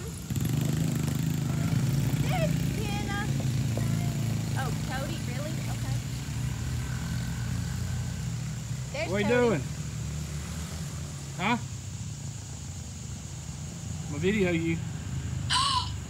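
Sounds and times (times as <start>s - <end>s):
atv engine running: 0.0s - 10.6s
short high calls: 15.5s - 16.0s.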